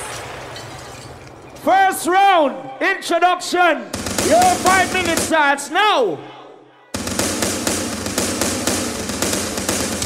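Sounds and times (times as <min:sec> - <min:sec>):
gunfire sound effect: 0:03.9 - 0:05.4, 0:07.0 - 0:10.0.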